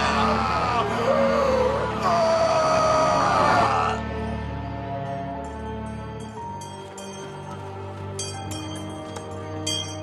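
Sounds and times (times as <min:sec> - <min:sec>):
person screaming: 0:00.0 - 0:04.1.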